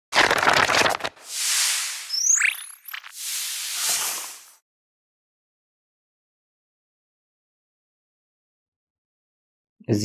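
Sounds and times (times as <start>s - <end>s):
crackling burst: 0.2s - 4.6s
short rising chirp: 1.3s - 4.6s.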